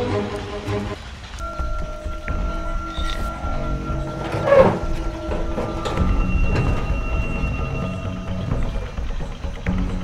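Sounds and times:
background music tones: 0.0s - 10.0s
metal gate rattling and creaking: 2.4s - 10.0s.

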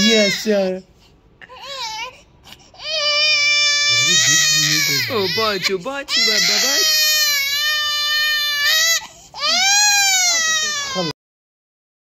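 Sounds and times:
baby crying: 0.0s - 0.7s, 1.4s - 11.2s.

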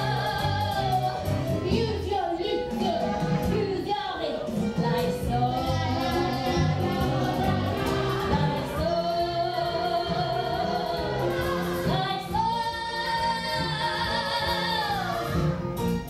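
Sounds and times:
woman singing: 0.0s - 15.6s
instrumental accompaniment: 0.0s - 16.0s.

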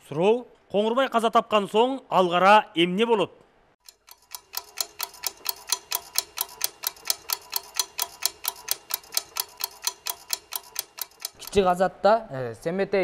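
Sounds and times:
ticking clock: 3.8s - 11.8s.

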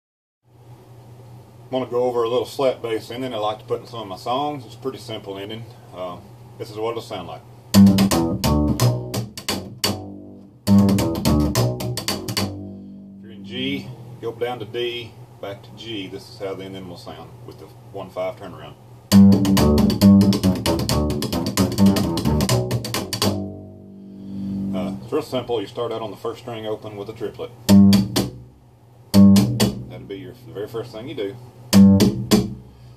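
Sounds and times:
upright bass slap playing: 7.7s - 13.9s, 19.1s - 25.1s, 27.6s - 30.6s, 31.7s - 32.7s.

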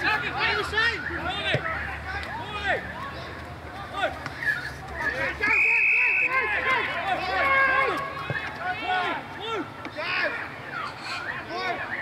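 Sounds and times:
whistle blast: 5.4s - 6.6s.

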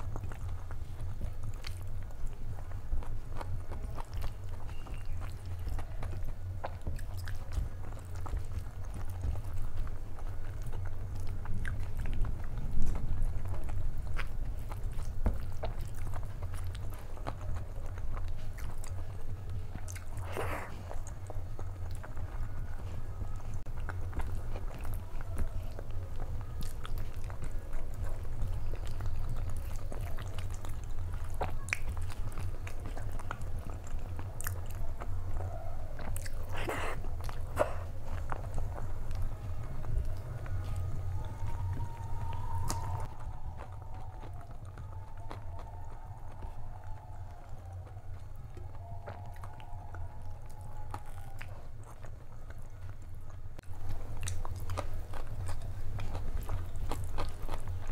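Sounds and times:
mouth smacks: 0.0s - 46.8s
chewing and wet mouth sounds: 0.0s - 57.9s.

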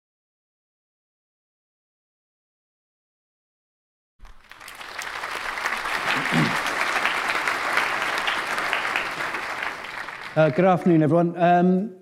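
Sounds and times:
audience applauding: 4.2s - 11.1s.

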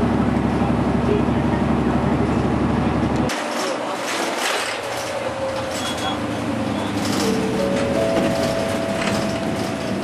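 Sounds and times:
bus road and engine noise: 0.0s - 10.0s.

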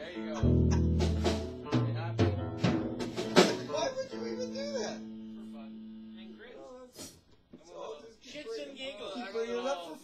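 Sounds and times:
drum kit hits: 0.0s - 4.7s.

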